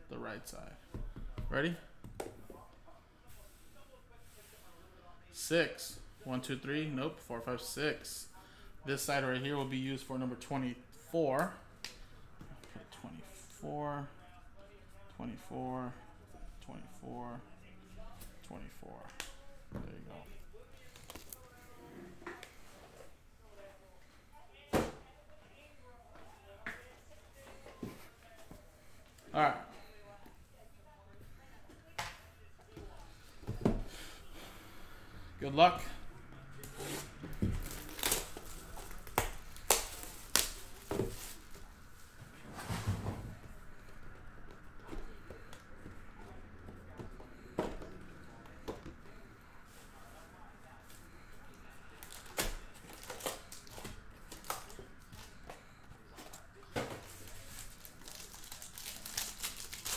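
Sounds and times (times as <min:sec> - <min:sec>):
plastic shrink wrap ripping: 0:37.6 - 0:40.8, 0:57.3 - 0:59.9.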